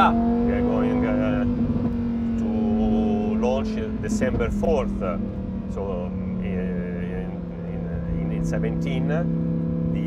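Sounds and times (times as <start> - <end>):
car engine cruising drone: 0.0 - 10.0.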